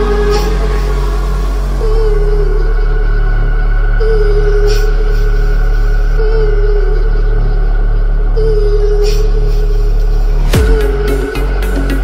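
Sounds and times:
electronic bass music: 5.3 - 12.0.

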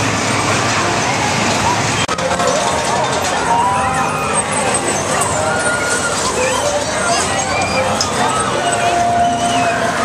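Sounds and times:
babble of crowd voices: 0.0 - 10.0
loud machinery drone: 0.0 - 10.0.

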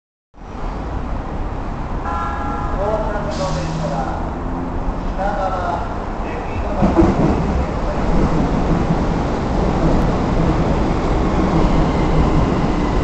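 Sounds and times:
train rumble: 0.5 - 13.0
electric train warning horn: 2.0 - 3.3
short hiss: 3.3 - 3.9.

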